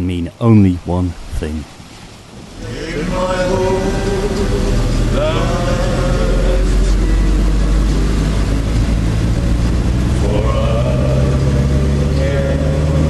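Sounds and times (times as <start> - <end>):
person speaking: 0.0 - 1.7
car engine and road drone: 2.1 - 13.0.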